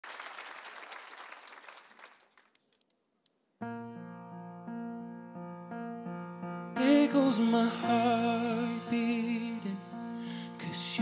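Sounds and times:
audience applause: 0:00.0 - 0:02.6.

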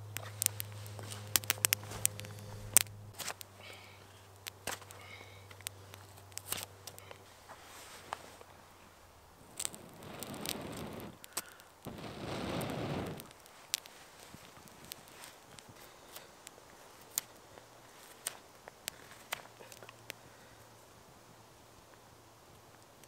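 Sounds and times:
small fire crackling and popping: 0:00.0 - 0:23.0.

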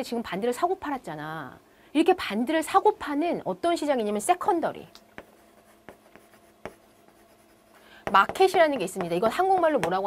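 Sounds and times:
chalk tapping on chalkboard: 0:05.1 - 0:10.0
chalk scratching on chalkboard: 0:05.2 - 0:10.0.

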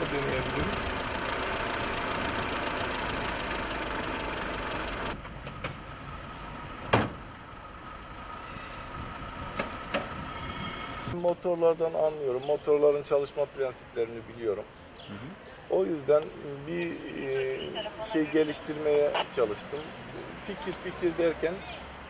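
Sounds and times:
car engine idling: 0:00.0 - 0:11.1.

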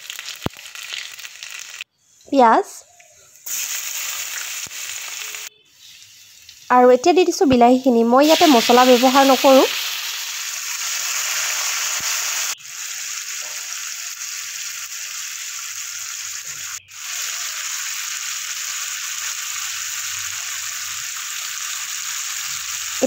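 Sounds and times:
tomatoes sizzling in hot oil: 0:00.0 - 0:01.9, 0:03.3 - 0:23.0.

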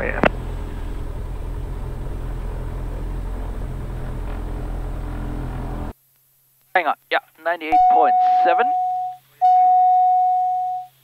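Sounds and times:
phone ringing beeps: 0:07.7 - 0:11.0.

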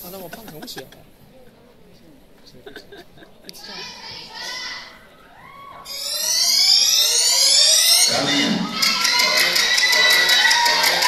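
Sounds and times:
buzzy synth riser sweep: 0:05.9 - 0:09.7.

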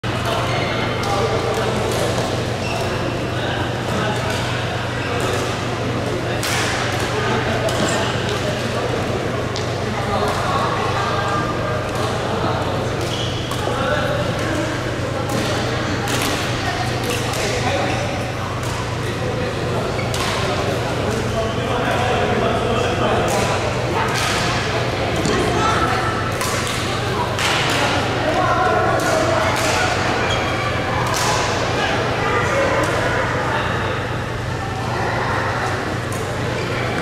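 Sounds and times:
rackets smacking shuttlecock: 0:26.3 - 0:28.0, 0:29.0 - 0:30.0.

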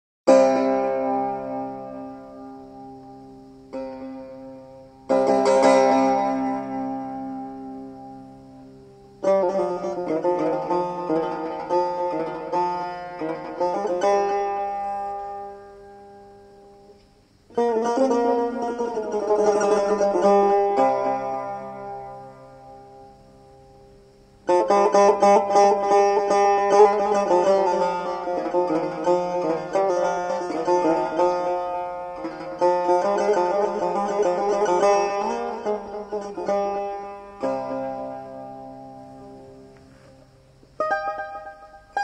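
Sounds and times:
plucked lute solo: 0:00.3 - 0:42.0.

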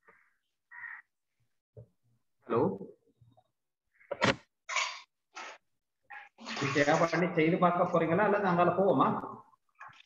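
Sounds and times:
harsh bird calls: 0:00.0 - 0:01.5.

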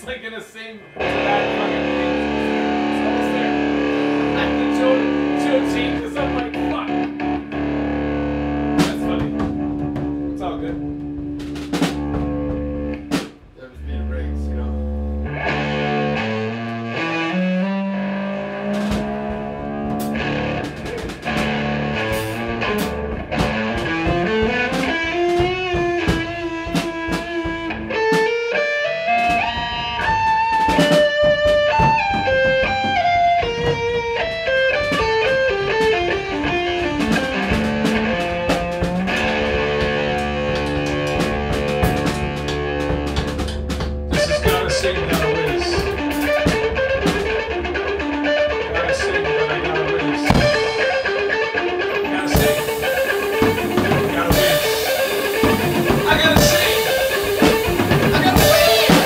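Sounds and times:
drum kit: 0:00.0 - 0:59.0
electric guitar: 0:00.8 - 0:59.0.

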